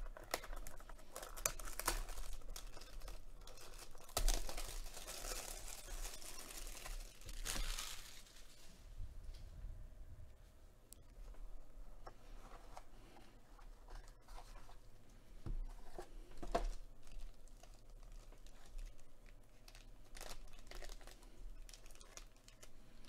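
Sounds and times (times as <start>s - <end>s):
plastic wrapper crinkling: 0.0s - 8.8s, 15.9s - 23.0s.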